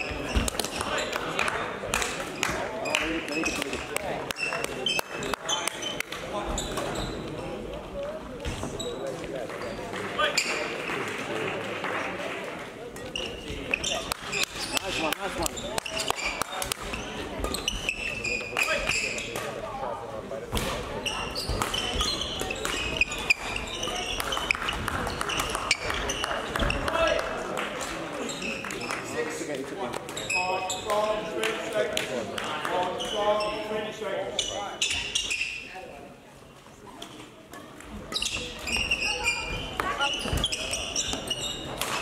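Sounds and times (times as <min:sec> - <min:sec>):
voices in a hall: 0:00.0 - 0:42.0.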